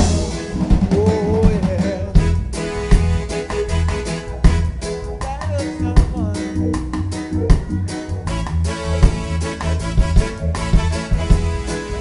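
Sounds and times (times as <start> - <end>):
drum hits: 0.0 - 11.8
bass line: 0.0 - 12.0
reggae band playing: 0.0 - 12.0.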